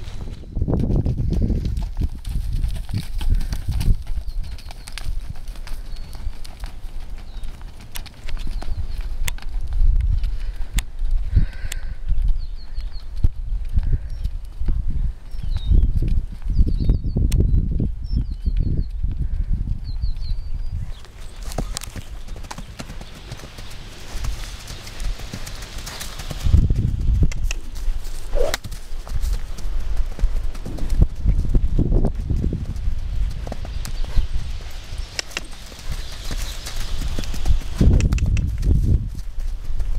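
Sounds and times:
hoofbeats on sand: 0.0 - 39.9.

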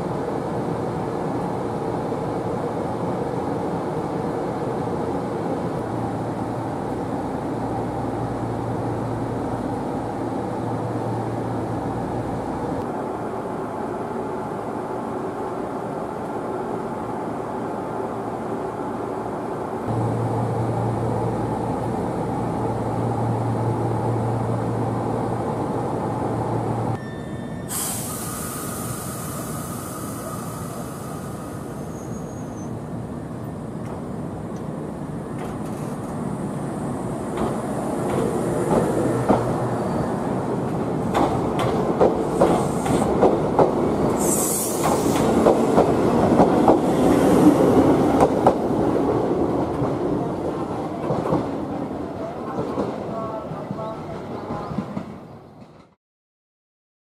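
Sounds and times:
train running hum: 0.0 - 56.0
loud hiss: 27.7 - 32.2, 44.2 - 45.4.

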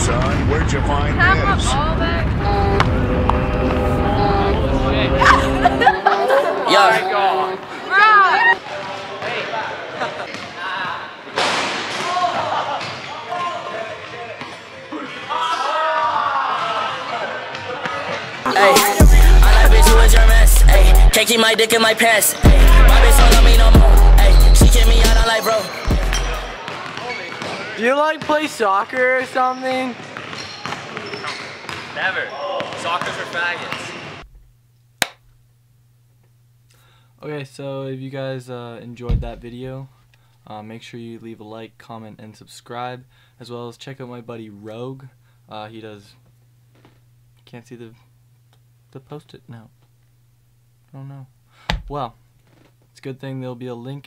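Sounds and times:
people's voices: 0.0 - 10.4, 18.5 - 27.0
low steady hum: 1.2 - 8.4
gym noise: 18.5 - 21.2
basketball bouncing: 30.0 - 32.0
hard thud: 51.7 - 52.0.

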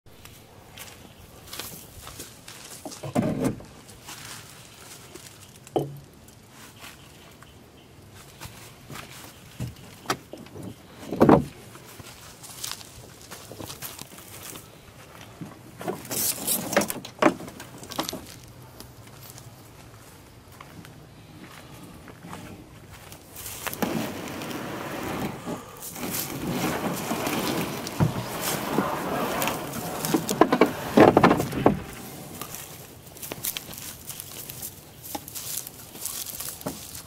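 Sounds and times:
footsteps in dry grass: 0.2 - 3.0, 3.9 - 5.6, 11.6 - 15.4, 18.2 - 37.0.

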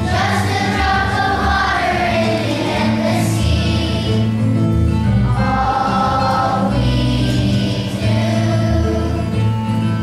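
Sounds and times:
children's choir singing: 0.0 - 4.6, 5.2 - 9.8
instrumental accompaniment: 0.0 - 10.0.

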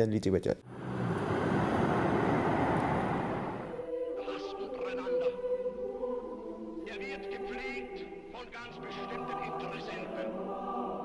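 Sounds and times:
low rushing rumble: 0.6 - 3.9.

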